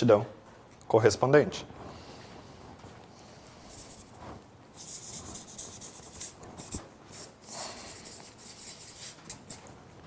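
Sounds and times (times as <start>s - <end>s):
marker pen scratching on paper: 3.7s - 4.2s, 4.8s - 9.7s.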